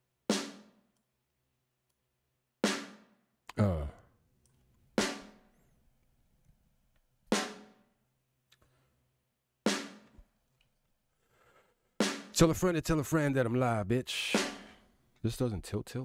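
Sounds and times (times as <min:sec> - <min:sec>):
snare drum hits: 0:14.4 - 0:14.8.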